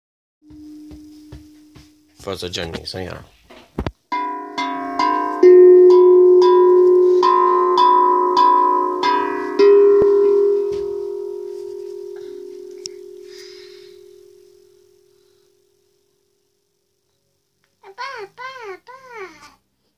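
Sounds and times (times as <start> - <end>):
steel handpan notes ringing: 0.5 - 2.2, 4.1 - 15.3.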